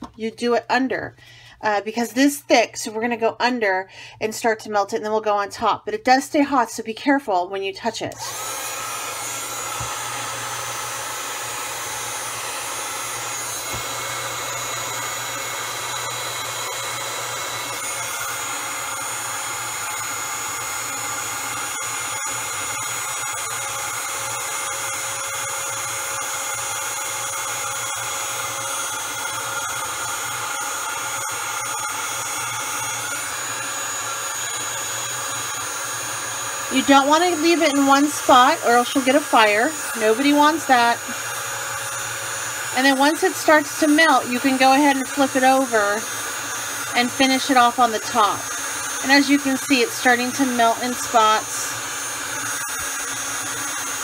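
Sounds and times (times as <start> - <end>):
heat tool blowing whir: 7.8 - 54.0.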